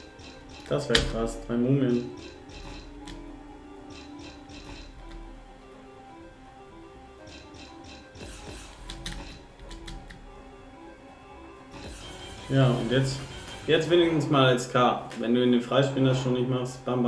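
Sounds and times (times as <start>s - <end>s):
slot game background music: 0.0s - 17.0s.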